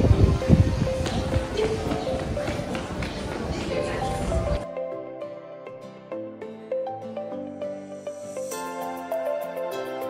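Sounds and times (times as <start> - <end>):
footsteps on pavement: 0.0 - 4.6.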